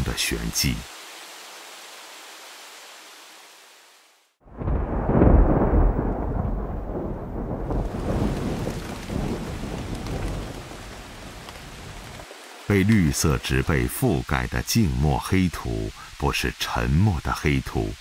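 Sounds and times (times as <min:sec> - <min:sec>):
faint hiss: 0:00.0 - 0:04.4, 0:11.3 - 0:18.0
steady rain: 0:00.0 - 0:18.0
thunder rolling: 0:04.4 - 0:12.2.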